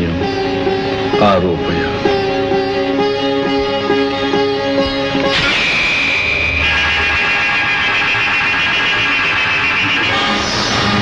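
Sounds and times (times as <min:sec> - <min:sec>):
high-pitched arrow whine: 0:05.2 - 0:11.0.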